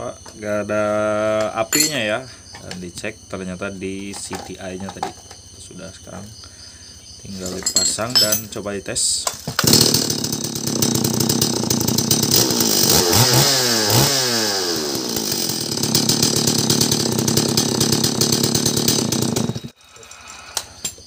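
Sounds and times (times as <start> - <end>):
chainsaw engine running: 9.5 - 19.8.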